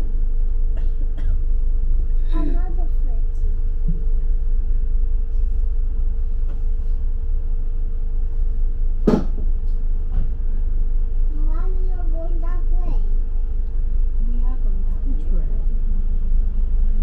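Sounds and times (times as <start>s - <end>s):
bus low rumble: 0.0s - 17.0s
constant hum: 0.0s - 17.0s
sharp knock: 9.0s - 9.4s.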